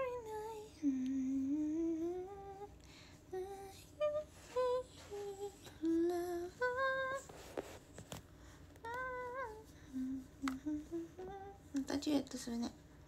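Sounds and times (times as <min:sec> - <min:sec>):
woman humming a tune: 0:00.0 - 0:02.7, 0:03.3 - 0:07.2, 0:08.8 - 0:12.7.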